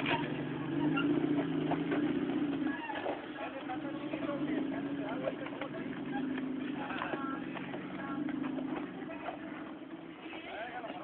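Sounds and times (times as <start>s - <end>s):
car engine running under load: 0.0s - 11.0s
people's voices: 0.0s - 11.0s.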